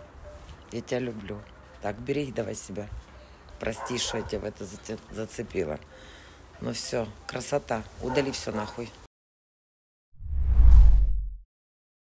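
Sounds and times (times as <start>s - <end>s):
transition whoosh with bass rumble: 10.2s - 11.4s.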